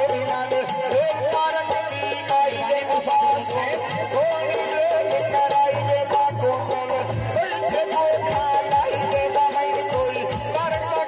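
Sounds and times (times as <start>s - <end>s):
man singing folk song: 0.0s - 11.0s
tabla: 0.0s - 11.0s.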